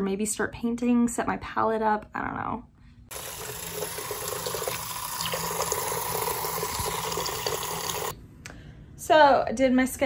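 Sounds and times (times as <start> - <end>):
tap running: 3.1 - 8.1.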